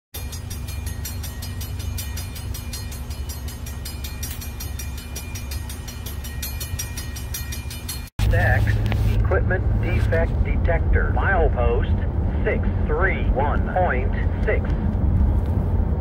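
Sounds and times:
diesel locomotive engine rumble: 0.2s - 16.0s.

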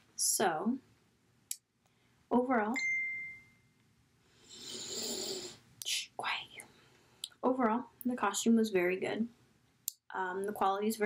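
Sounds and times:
sharp breath in: 4.3s - 5.6s.

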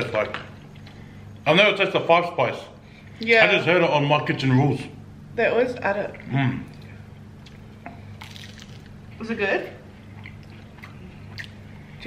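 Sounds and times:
wet squishy food sounds: 6.2s - 9.0s, 10.0s - 12.0s.

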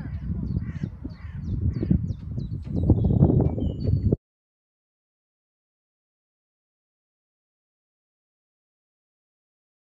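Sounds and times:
birds chirping and whistling: 0.0s - 4.2s
wind rumbling on microphone: 0.0s - 4.2s.

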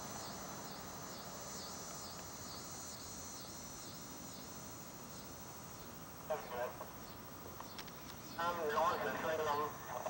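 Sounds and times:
insects buzzing in pulses: 0.0s - 10.0s.

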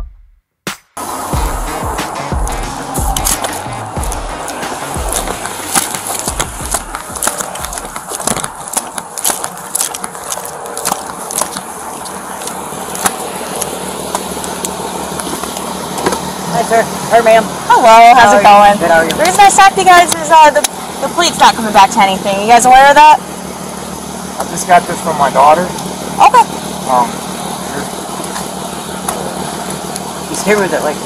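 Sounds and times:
footsteps: 1.4s - 17.1s
gear and clothing rubbing: 2.5s - 17.4s.

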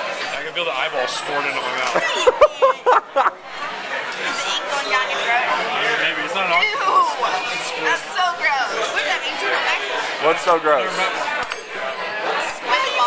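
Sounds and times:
restaurant chatter: 0.0s - 13.0s.

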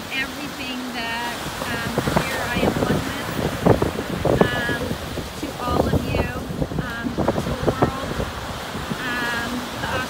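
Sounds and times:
small waves breaking on cobbles: 0.0s - 10.0s
wind buffeting microphone: 0.0s - 10.0s.

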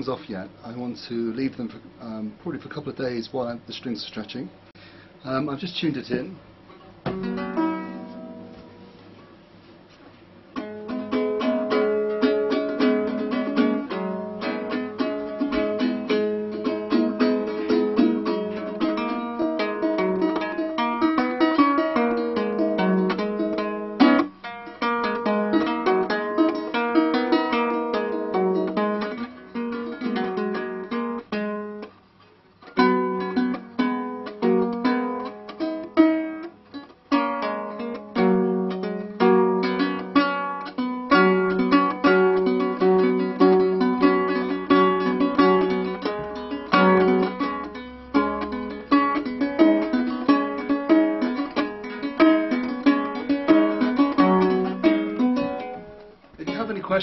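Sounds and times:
lyre plucked notes and chords: 6.7s - 9.0s, 10.5s - 57.0s.

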